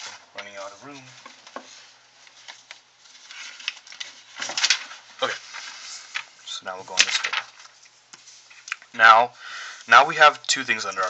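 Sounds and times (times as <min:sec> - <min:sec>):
paper rustling and sliding: 0:00.0 - 0:08.7, 0:09.8 - 0:11.0.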